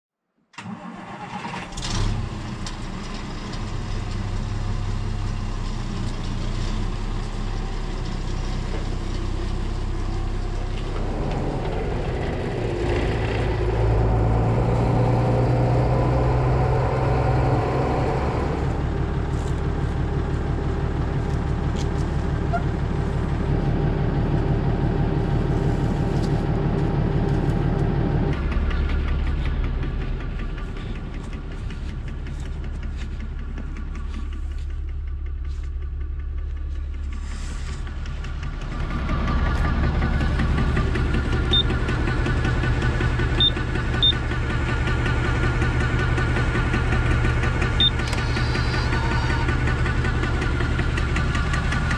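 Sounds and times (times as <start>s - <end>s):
tractor diesel engine running: 0.6s - 51.9s.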